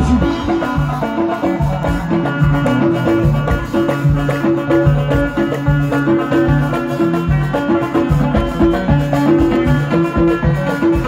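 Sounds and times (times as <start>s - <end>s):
plucked strings melody: 0.0s - 11.0s
steady drum beat: 0.0s - 11.0s.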